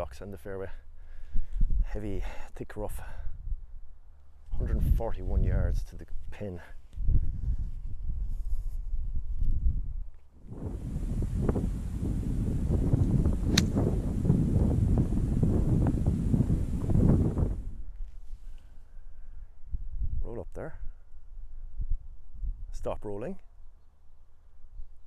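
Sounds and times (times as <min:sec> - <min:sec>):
wind buffeting microphone: 0:01.3 - 0:01.9, 0:04.5 - 0:06.0, 0:06.9 - 0:18.1, 0:19.6 - 0:22.8
golf club striking ball: 0:13.5 - 0:14.0.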